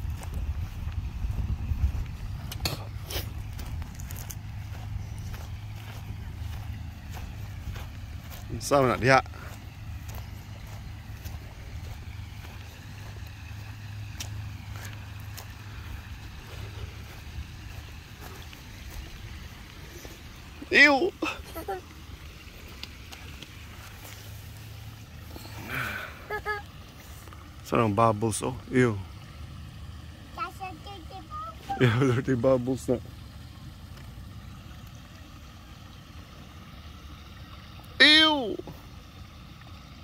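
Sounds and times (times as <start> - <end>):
wind rumbling on microphone: 0.0 - 8.6
creek water over pebbles: 0.0 - 40.0.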